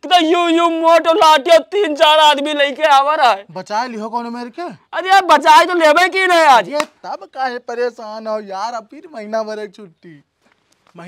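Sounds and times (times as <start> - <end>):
man calling out in strained voice: 0.0 - 3.5, 4.6 - 6.8
man talking: 0.0 - 11.0.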